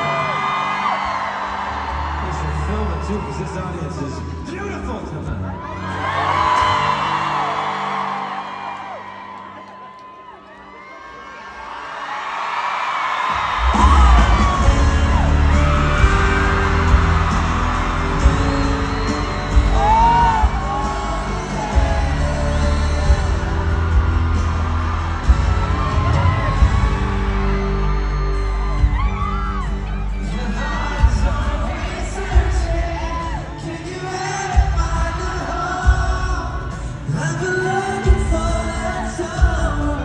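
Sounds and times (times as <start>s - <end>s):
crowd screaming: 0.0s - 40.0s
rock band with drums and bass: 13.3s - 40.0s
person singing: 13.8s - 40.0s.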